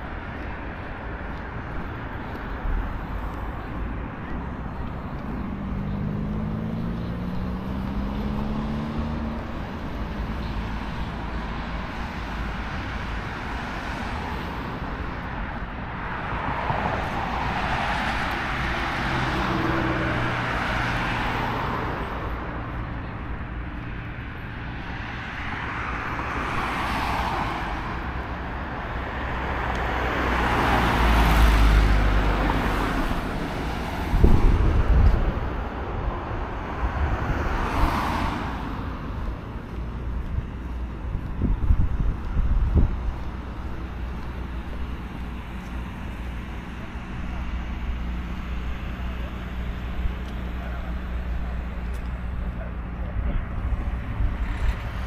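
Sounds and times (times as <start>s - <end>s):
cars passing: 0.0s - 55.0s.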